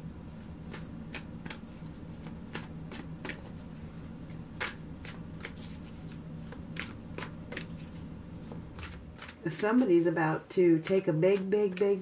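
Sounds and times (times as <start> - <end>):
steady low hum: 0.0 - 12.0
cards being shuffled: 0.6 - 9.9.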